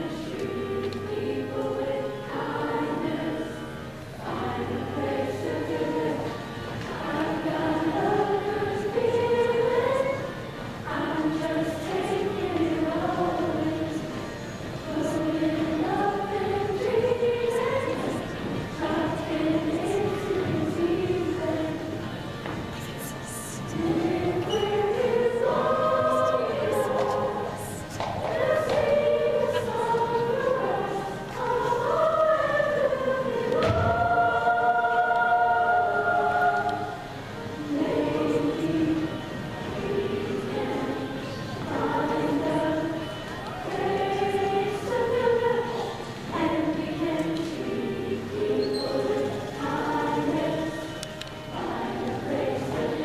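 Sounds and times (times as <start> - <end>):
choir singing: 0.0 - 53.0.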